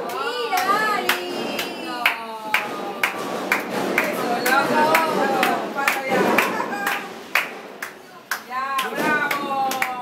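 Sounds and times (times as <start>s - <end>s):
rhythmic hand claps: 0.0s - 10.0s.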